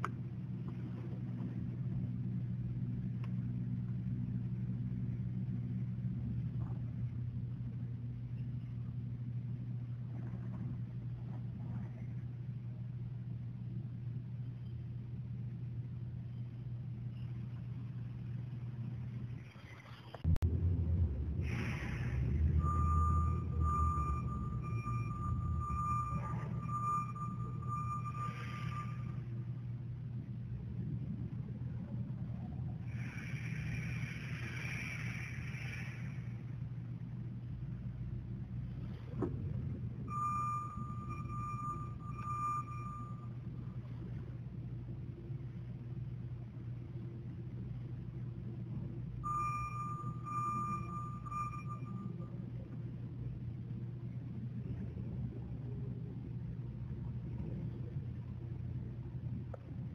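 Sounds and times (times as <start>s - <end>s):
steady low hum: 0.0s - 59.9s
rapid high electronic beeps: 21.4s - 29.4s, 40.1s - 43.5s, 49.2s - 52.3s.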